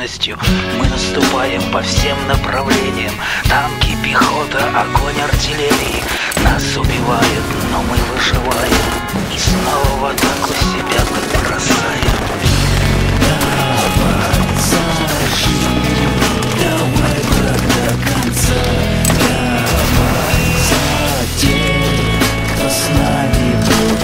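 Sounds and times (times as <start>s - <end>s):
rock band playing: 0.4s - 24.0s.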